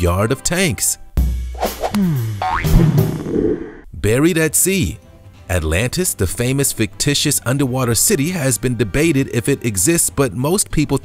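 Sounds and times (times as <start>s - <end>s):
background music: 0.0s - 11.0s
cartoon boing glide: 1.9s - 3.8s
deep low hit: 1.9s - 3.9s.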